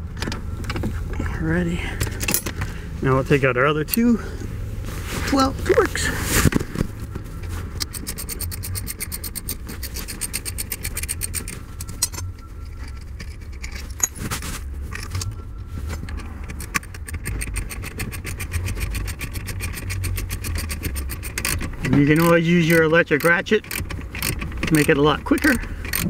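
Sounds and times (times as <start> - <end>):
ratchet wrench clicking: 7.8 - 14.1, 16.5 - 26.0.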